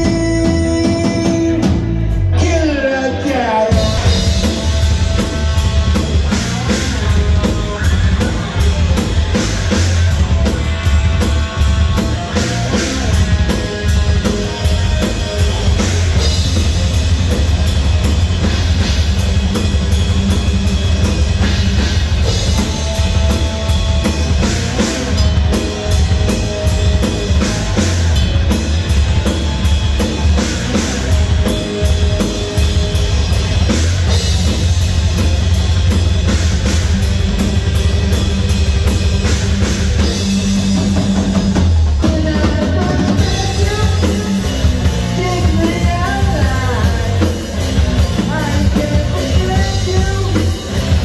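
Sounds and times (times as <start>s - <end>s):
live rock band playing: 0.0s - 51.0s.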